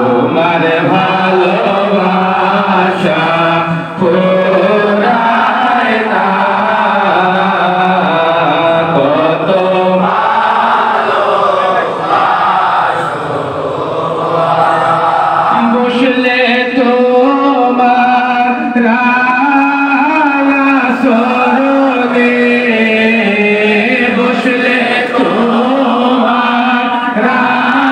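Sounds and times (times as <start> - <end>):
men chanting together: 0.0 - 27.9.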